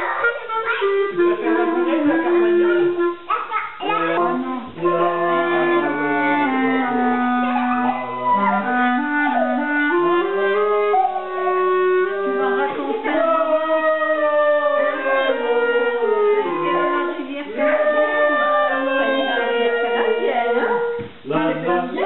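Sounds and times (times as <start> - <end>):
clarinet melody: 0.0 - 21.0.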